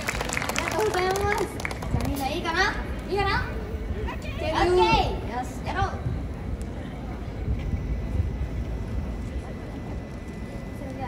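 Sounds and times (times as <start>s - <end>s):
faint murmur of voices: 0.4s - 11.0s.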